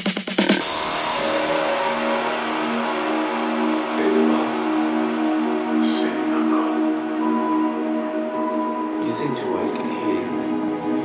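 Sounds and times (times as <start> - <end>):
noisy synth wash: 0.4 - 11.0
held low synth tones: 0.6 - 11.0.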